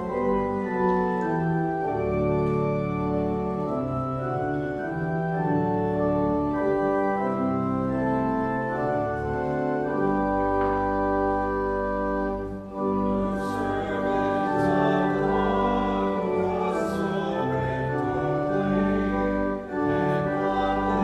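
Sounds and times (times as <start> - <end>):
church organ chords: 0.0 - 21.0.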